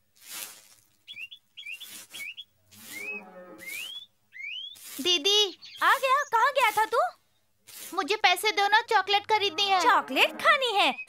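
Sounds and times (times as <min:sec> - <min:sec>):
broom sweeping dirt: 0:00.0 - 0:09.0
high chirps and rising calls: 0:01.0 - 0:06.9.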